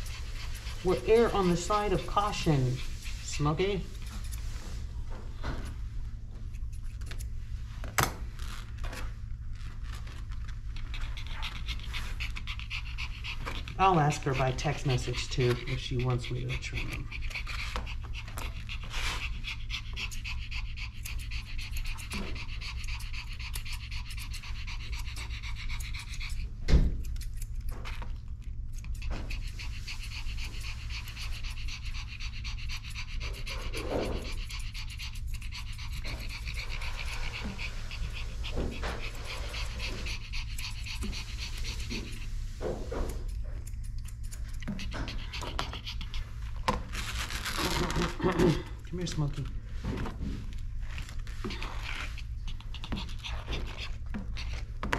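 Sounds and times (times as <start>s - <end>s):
dog panting: 0.0s - 7.9s, 8.5s - 54.9s.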